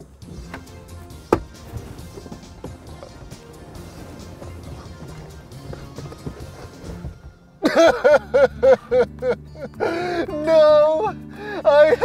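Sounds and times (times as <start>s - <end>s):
man laughing: 7.6s - 10.4s, 11.6s - 12.0s.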